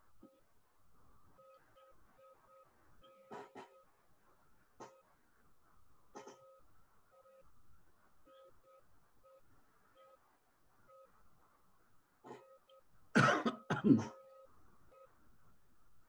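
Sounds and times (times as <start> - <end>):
faint two-pitch beeps: 14.0 - 15.2.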